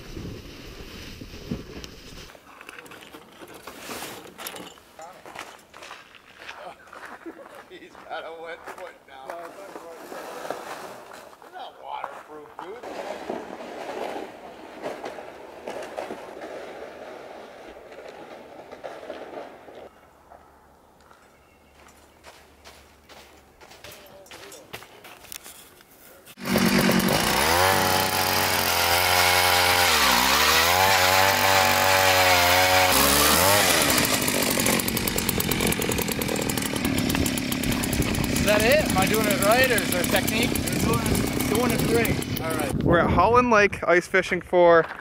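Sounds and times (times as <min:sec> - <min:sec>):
ice auger engine drilling: 0:26.4 - 0:42.7.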